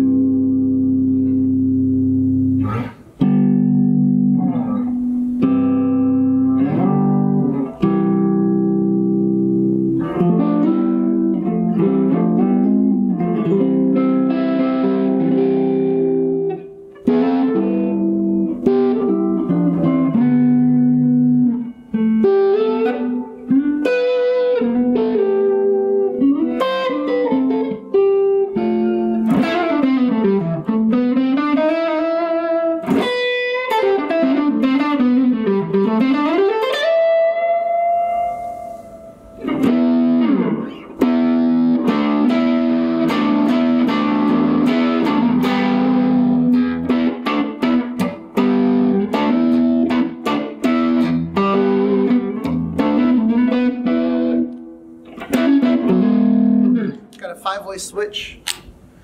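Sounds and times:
electric guitar playing: 0:00.0 - 0:59.0.

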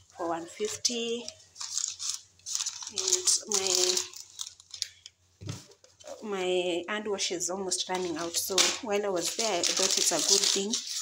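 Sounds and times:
shopping bag rustling: 0:01.0 - 0:04.7, 0:07.9 - 0:11.0.

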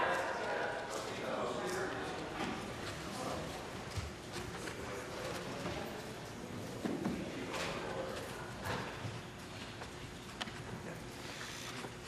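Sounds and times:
murmur in a large hall: 0:00.0 - 0:12.0.

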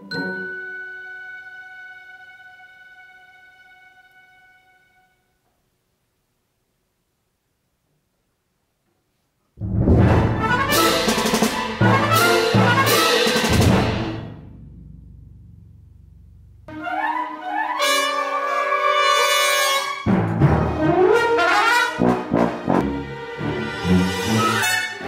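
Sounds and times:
brass passage with trumpet: 0:09.6 - 0:14.5, 0:16.7 - 0:25.0
heavy percussion hits: 0:09.6 - 0:16.7.

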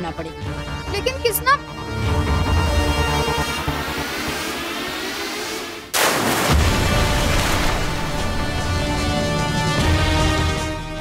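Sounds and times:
dramatic soundtrack music: 0:00.0 - 0:11.0
sudden loud crash: 0:06.0 - 0:08.6.

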